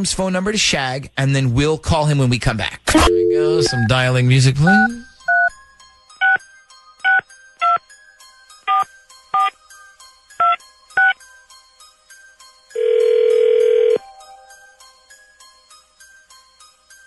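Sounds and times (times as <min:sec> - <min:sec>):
light rhythmic background music: 0:00.0 - 0:17.0
steady telephone line tone: 0:03.1 - 0:03.8, 0:12.7 - 0:14.0
touch-tone keypad beeps: 0:03.1 - 0:03.9.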